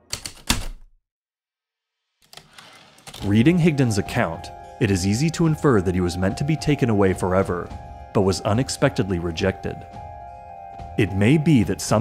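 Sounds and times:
typewriter keys striking: 0.0s - 0.9s.

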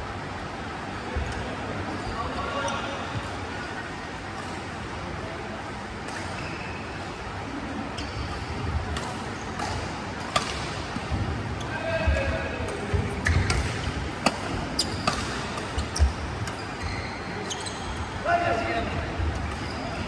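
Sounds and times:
players' voices: 0.6s - 20.0s
racket hitting shuttlecock: 8.9s - 11.2s, 12.6s - 16.6s.

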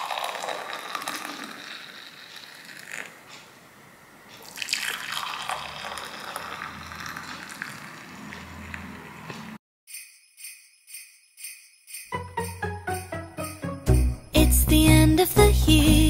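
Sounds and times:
liquid pouring into glass mugs: 0.0s - 3.1s, 4.4s - 8.1s.

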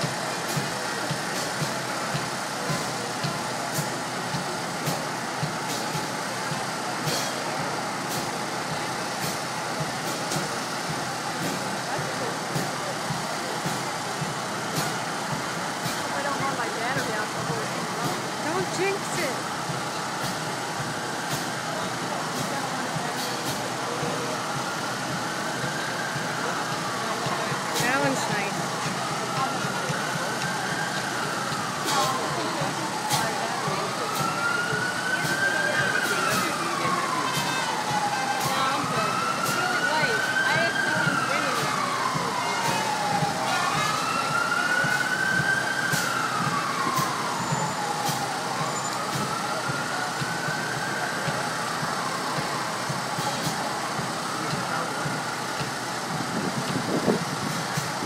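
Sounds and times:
crowd hubbub: 0.0s - 58.0s
emergency vehicle siren wailing: 0.0s - 58.0s
steady traffic: 0.0s - 58.0s.

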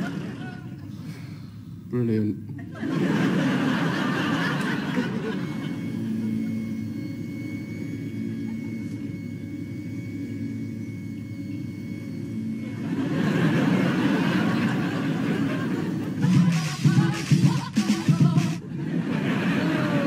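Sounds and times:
faint held hum: 0.0s - 20.0s.

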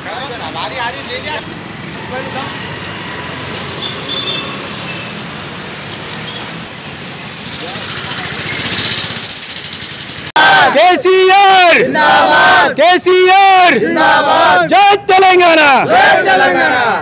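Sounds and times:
men talking and calling: 0.0s - 3.8s, 7.3s - 17.0s
motorcycle engines running: 0.0s - 10.3s.

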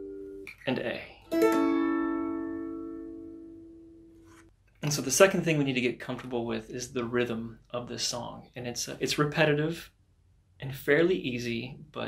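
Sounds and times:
strummed string chord ringing: 1.3s - 4.1s.

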